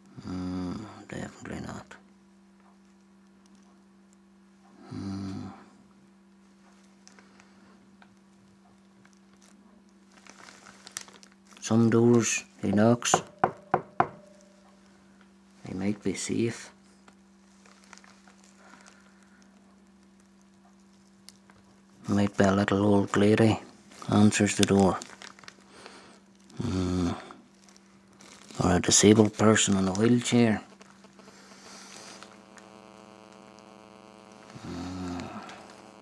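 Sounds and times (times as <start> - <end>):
faint electrical hum: 0.0 - 36.0
knocking on a door: 12.7 - 14.3.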